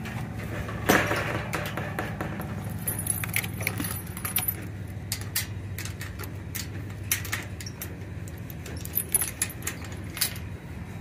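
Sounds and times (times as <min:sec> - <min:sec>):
metal chain clinking and rattling: 0:01.5 - 0:10.5.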